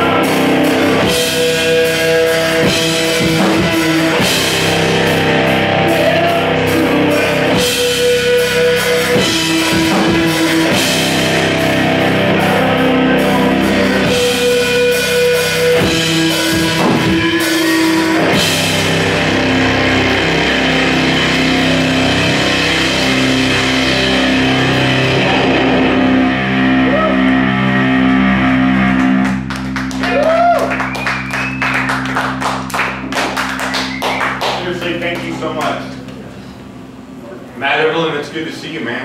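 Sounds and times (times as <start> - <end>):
rock band final chord: 0.0 - 37.2
audience clapping and cheering: 28.3 - 36.2
whistles from audience: 30.6 - 32.0, 33.6 - 34.4.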